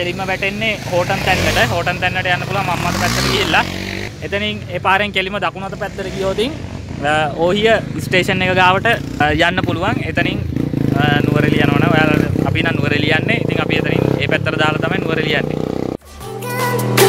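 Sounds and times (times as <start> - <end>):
man talking: 0.0 - 15.6
motorcycle engine running: 0.0 - 16.0.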